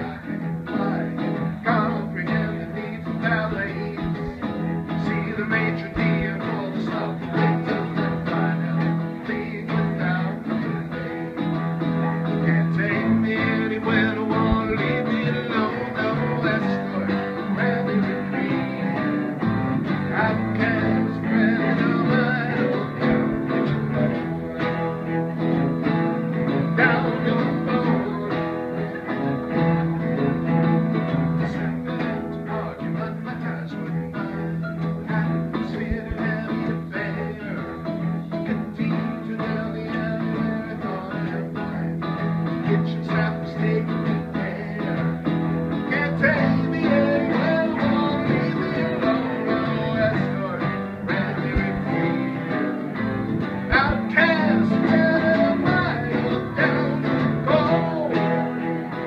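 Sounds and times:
acoustic guitar: 0.0 - 59.0.

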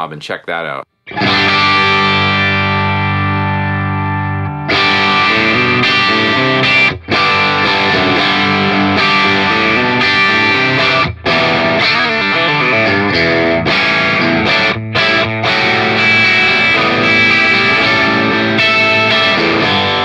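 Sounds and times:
overdriven electric guitar chords: 1.1 - 20.0.

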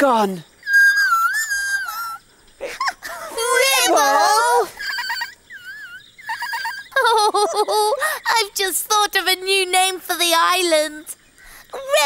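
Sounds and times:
squeaky puppet chirping: 0.7 - 2.9, 3.5 - 7.0.

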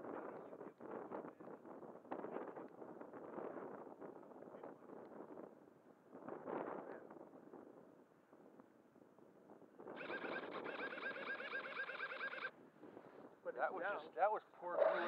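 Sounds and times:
wind buffeting microphone: 0.0 - 11.5
warbling animal trill: 10.0 - 12.5.

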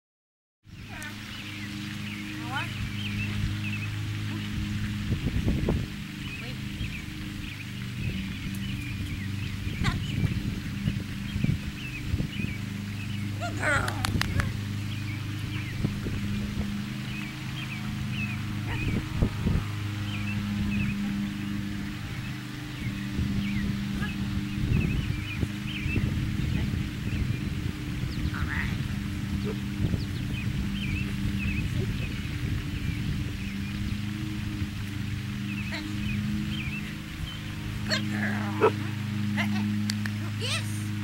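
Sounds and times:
low steady hum: 0.7 - 41.0
wind rumbling on microphone: 0.7 - 41.0.

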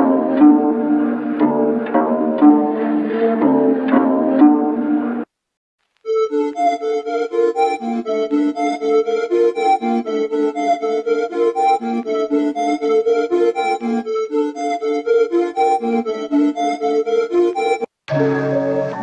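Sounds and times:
pulsing held keyboard notes: 0.0 - 5.2, 6.1 - 19.0
melody loop with sharp note attacks: 6.1 - 19.0.

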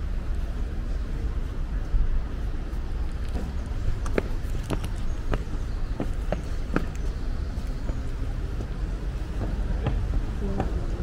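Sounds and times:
footsteps on stone steps: 2.8 - 11.0.

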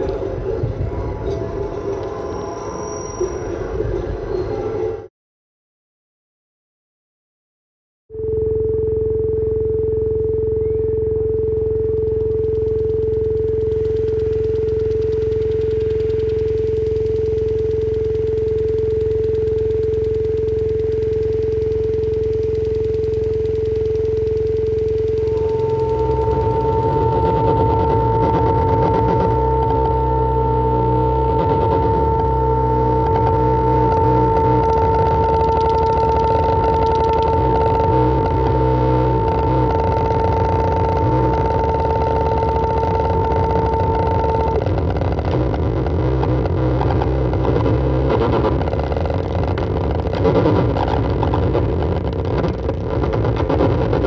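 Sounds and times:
electronic noise music: 0.0 - 5.1, 8.1 - 54.0.

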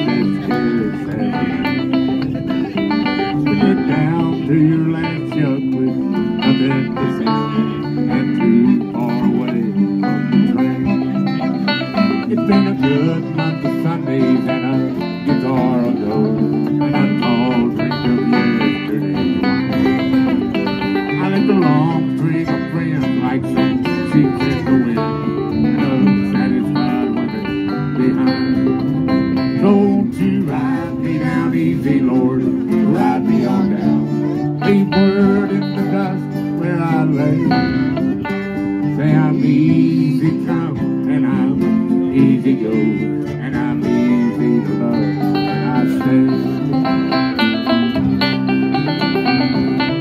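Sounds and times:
fiddle melody: 0.0 - 50.0
picked banjo: 0.0 - 50.0
strummed guitar: 0.0 - 50.0.

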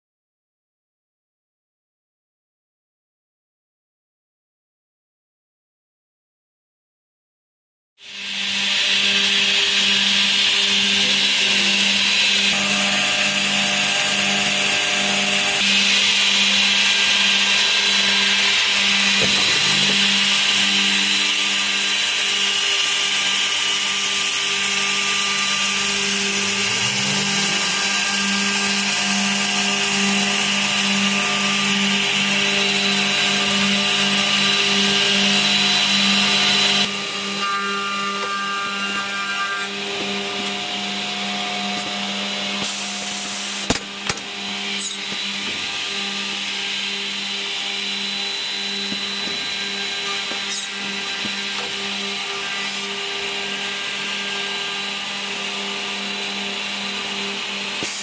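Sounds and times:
machine motor hum with hiss: 8.0 - 58.0.

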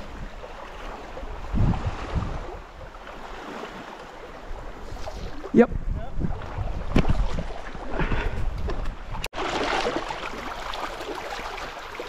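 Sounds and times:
light water splashing: 6.3 - 12.0
rocky stream running: 8.8 - 12.0.

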